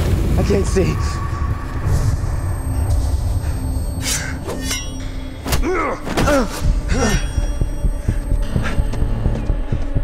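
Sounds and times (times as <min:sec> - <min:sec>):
tense dark film score: 0:00.0 - 0:10.0.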